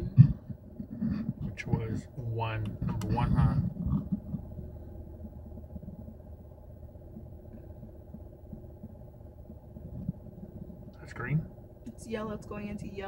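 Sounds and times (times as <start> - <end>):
car cabin hum: 0.0 - 13.0
light irregular ticking: 0.0 - 13.0.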